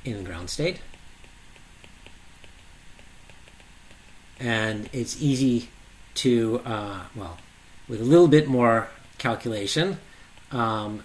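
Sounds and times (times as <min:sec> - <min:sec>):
low steady hiss: 0:00.0 - 0:11.0
stylus ticking on glass screen: 0:00.6 - 0:05.1.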